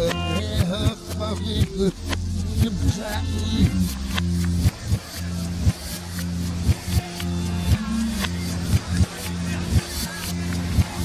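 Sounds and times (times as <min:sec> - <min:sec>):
low bass notes: 0:00.0 - 0:11.0
reversed rock song: 0:00.0 - 0:11.0.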